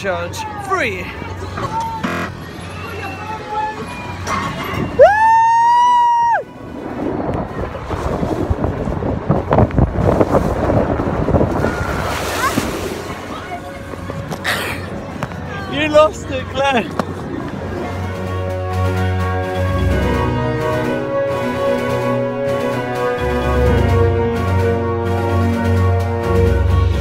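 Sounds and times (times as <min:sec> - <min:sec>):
water rushing and sloshing: 0:06.4 - 0:18.6.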